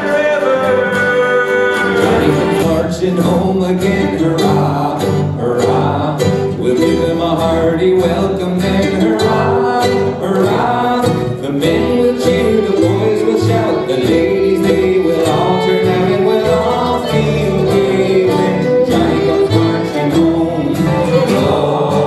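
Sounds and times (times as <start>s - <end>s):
fiddle: 0.0s - 4.9s, 5.5s - 22.0s
acoustic guitar: 0.0s - 22.0s
banjo: 0.0s - 22.0s
upright bass: 0.0s - 22.0s.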